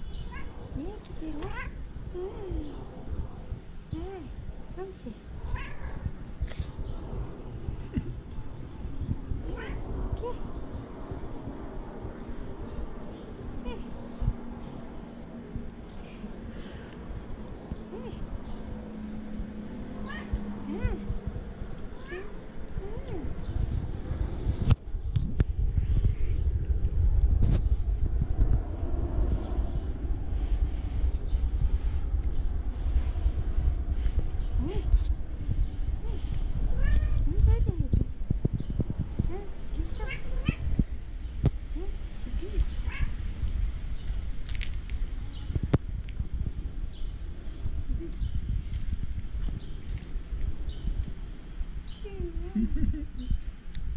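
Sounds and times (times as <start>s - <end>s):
low uneven rumble: 0.0s - 53.9s
cat meowing: 5.5s - 5.9s, 20.0s - 20.4s, 22.0s - 22.4s, 42.8s - 43.1s.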